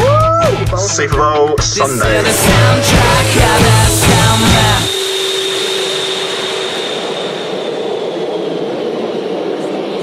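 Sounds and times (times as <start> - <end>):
aircraft engine whine: 1.8 - 10.0.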